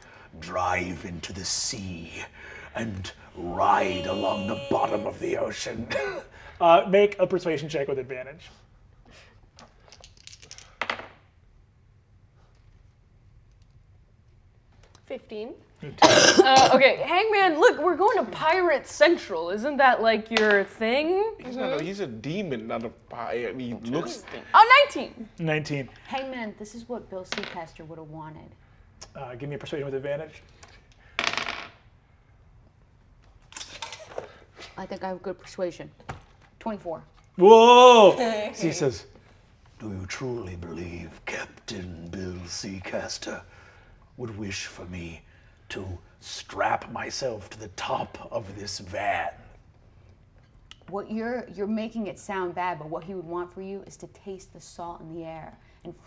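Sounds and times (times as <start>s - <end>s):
dice clattering on table: 9.7s - 11.2s, 31.2s - 31.8s.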